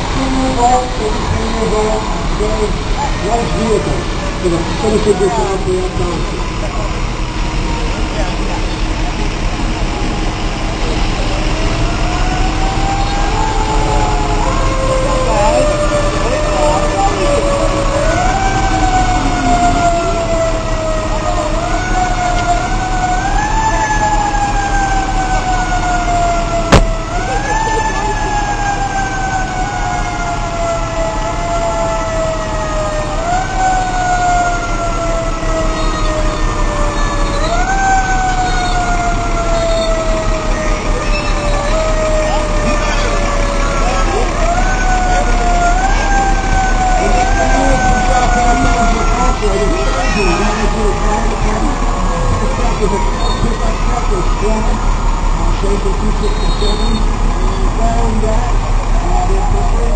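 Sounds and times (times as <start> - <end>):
fire engine siren: 0.0 - 59.9
truck engines rumbling: 0.0 - 59.9.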